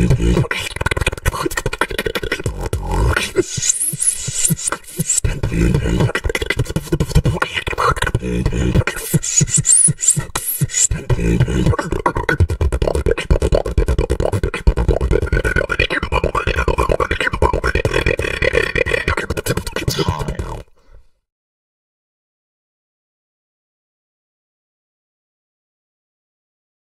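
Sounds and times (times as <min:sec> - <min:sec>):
human beatboxing: 0:00.0 - 0:20.8.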